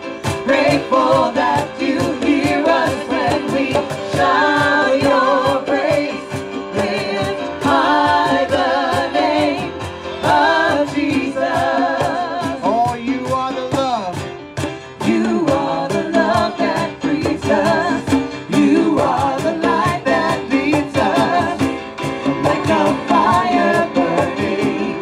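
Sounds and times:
voices singing together: 0.0s - 13.3s, 14.9s - 25.0s
hand drums beating: 0.0s - 25.0s.

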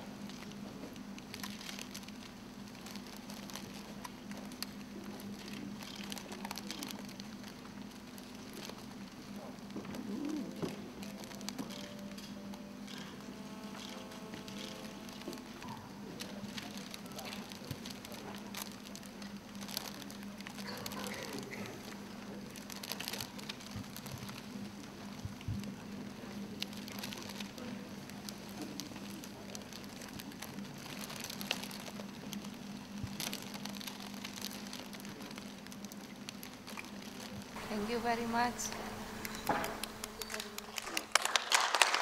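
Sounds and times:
faint indistinct murmuring: 0.0s - 41.1s
low electrical hum: 0.0s - 42.0s
sharp clicks and crackles: 0.2s - 37.8s, 38.8s - 41.9s.

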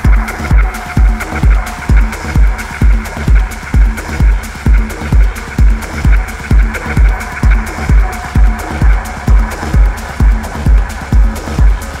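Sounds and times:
hi-hat ticks: 0.0s - 12.0s
kick drum: 0.0s - 12.0s.

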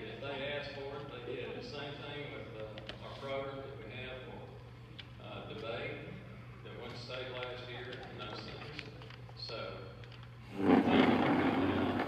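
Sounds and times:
loud scraping rubbing noise: 10.5s - 12.0s.

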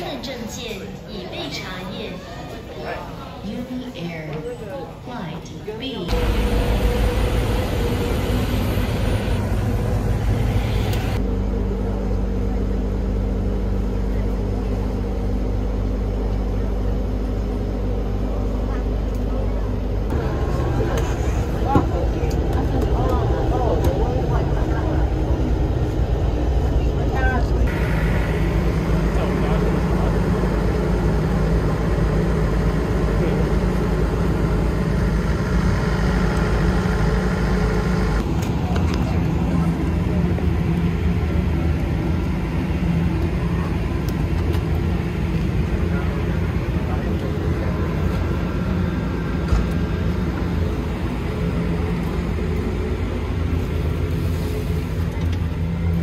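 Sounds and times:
bus engine rumble: 4.4s - 56.0s
steady low hum: 5.2s - 56.0s.

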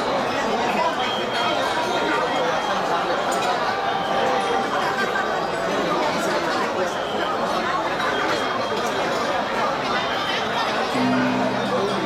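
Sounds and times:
hubbub of many people talking: 0.0s - 12.0s.

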